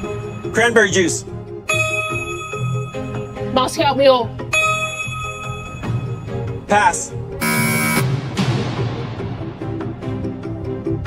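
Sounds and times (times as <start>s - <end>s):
tense music with low beat: 0.0s - 11.0s
game-show buzzer: 7.4s - 8.2s.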